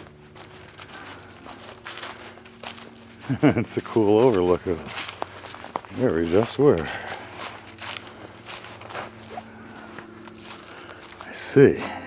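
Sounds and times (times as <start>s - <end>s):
footsteps crunching on dry leaves: 0.0s - 12.0s.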